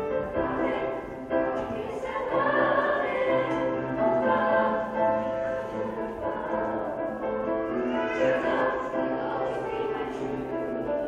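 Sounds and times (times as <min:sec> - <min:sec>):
youth choir singing: 0:00.0 - 0:11.0.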